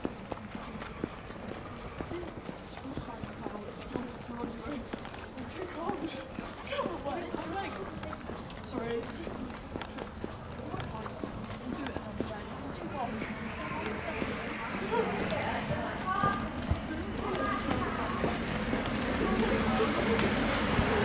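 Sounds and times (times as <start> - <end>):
footsteps on tarmac: 0.0 - 21.0
people talking indistinctly: 0.0 - 21.0.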